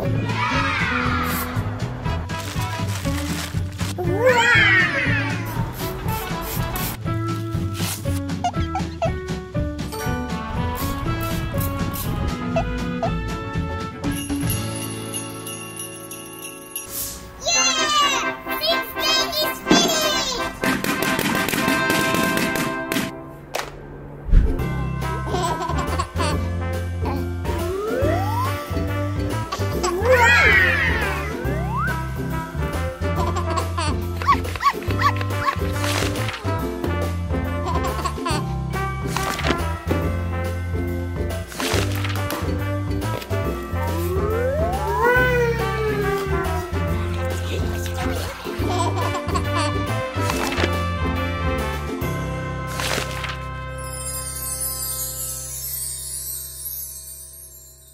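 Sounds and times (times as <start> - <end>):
background music: 0.0 - 57.7
rising sliding tone: 43.8 - 46.6.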